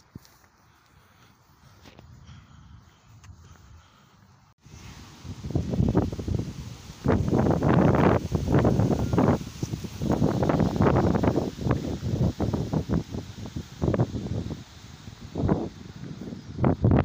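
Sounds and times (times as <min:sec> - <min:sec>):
wind buffeting microphone: 0:04.7 - 0:17.0.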